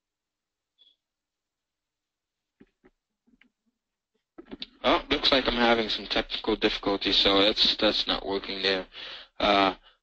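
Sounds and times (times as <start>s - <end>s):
man speaking: 4.4s - 9.8s.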